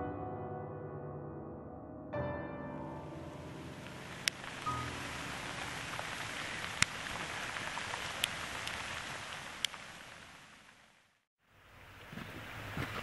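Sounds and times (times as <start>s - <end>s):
ice pellets falling on gravel: 3.9s - 9.7s.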